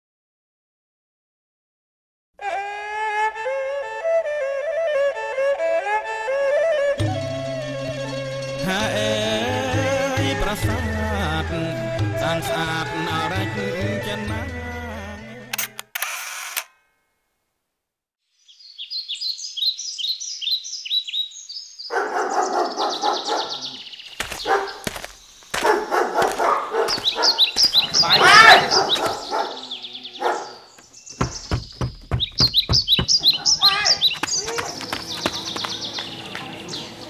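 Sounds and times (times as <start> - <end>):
birds chirping: 18.4 - 37.0
dog barking: 21.9 - 23.8, 24.4 - 24.8, 25.6 - 30.7.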